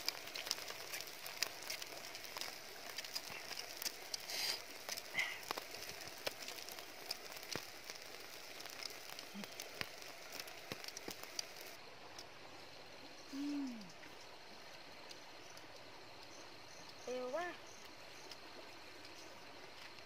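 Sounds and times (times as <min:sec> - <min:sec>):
campfire embers crackling: 0:00.0 - 0:20.0.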